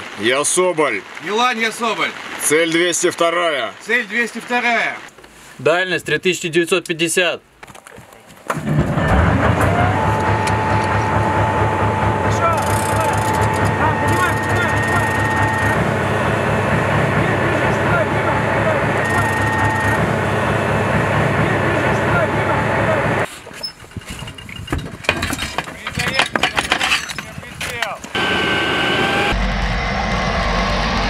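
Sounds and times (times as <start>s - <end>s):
diesel engine rumbling: 8.6s - 31.0s
steady whine: 8.8s - 23.3s, 28.0s - 31.0s.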